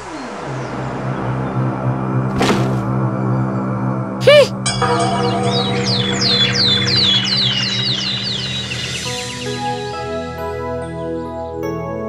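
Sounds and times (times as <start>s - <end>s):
background music: 0.5s - 12.0s
birds chirping: 4.8s - 10.9s.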